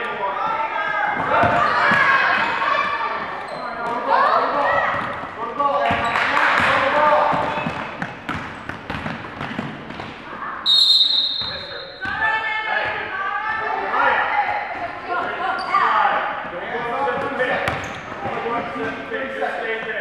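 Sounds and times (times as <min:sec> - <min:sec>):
players and spectators voices: 0:00.0 - 0:20.0
basketball bouncing on hardwood: 0:07.3 - 0:10.2, 0:17.2 - 0:18.4
referee's whistle: 0:10.6 - 0:12.0.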